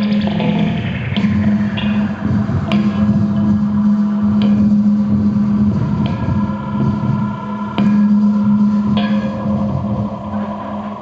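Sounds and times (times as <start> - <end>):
rock band low drone: 0.0 - 11.0.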